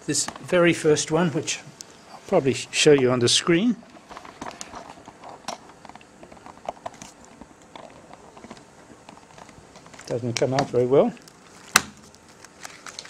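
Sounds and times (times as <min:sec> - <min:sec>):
handling clicks and knocks: 0:04.1 - 0:10.9.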